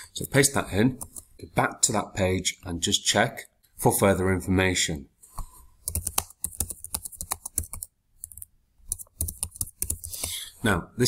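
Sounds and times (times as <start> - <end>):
typing on computer keyboard: 5.8 - 10.4.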